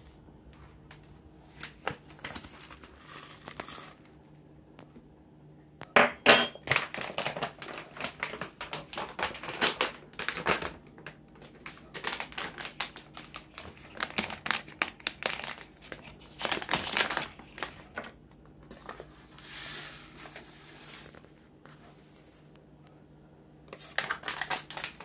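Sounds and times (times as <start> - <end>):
plastic pouch crinkling: 1.5 - 4.2, 6.7 - 18.1, 23.7 - 25.0.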